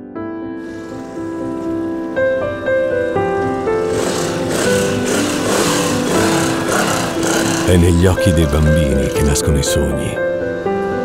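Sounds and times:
soft sustained music notes: 0.6s - 11.0s.

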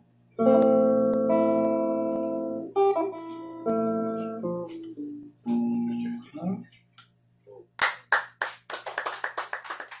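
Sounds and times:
jazz guitar: 0.3s - 6.9s
hand clapping: 7.8s - 10.0s.

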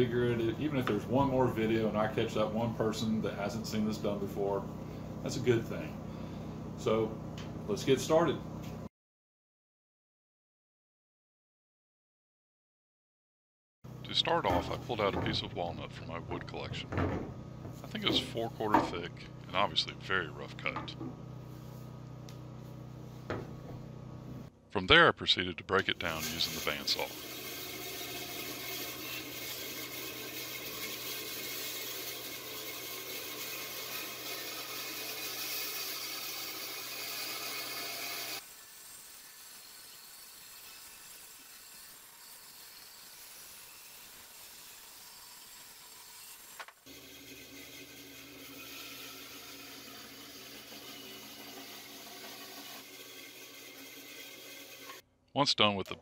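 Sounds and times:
bandsaw motor hum: 25.8s - 55.0s.

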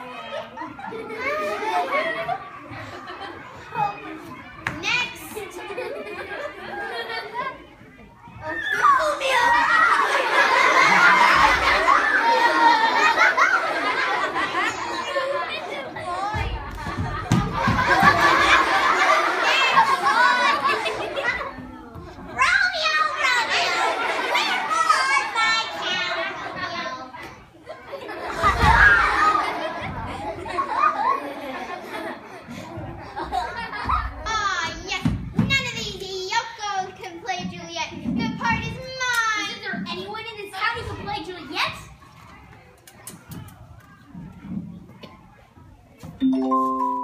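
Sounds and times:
children talking and calling out: 0.0s - 47.0s.

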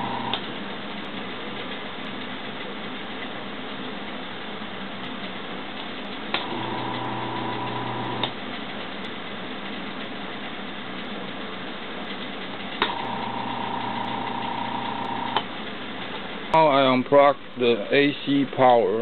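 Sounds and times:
electric motor humming: 0.0s - 0.4s, 6.4s - 8.4s, 12.8s - 15.4s.

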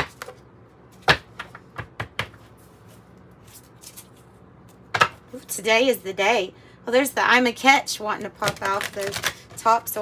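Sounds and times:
cards being shuffled: 2.6s - 4.3s, 8.4s - 9.6s.

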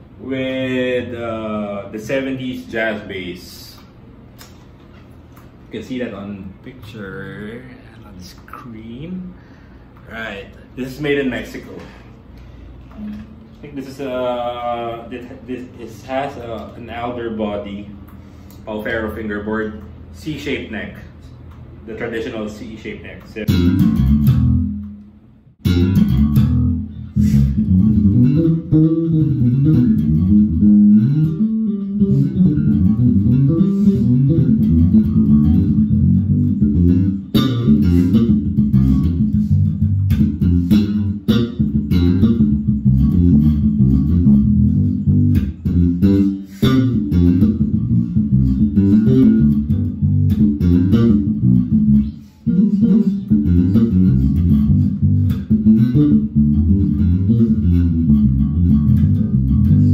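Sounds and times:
electric bass line fingerstyle: 23.4s - 59.9s.

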